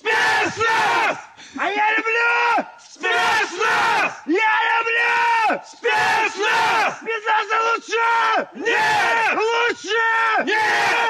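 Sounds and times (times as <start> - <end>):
men shouting a military chant: 0.0 - 11.0.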